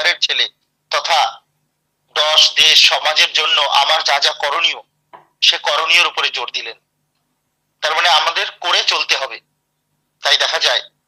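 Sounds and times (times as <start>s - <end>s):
man speaking over online call: 0.0s - 1.5s, 2.1s - 6.8s, 7.8s - 9.5s, 10.2s - 11.0s.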